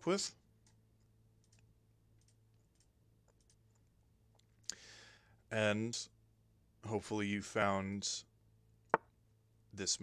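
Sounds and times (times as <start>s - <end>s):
faint hum: 0.0s - 10.0s
computer mouse clicks: 1.4s - 3.8s.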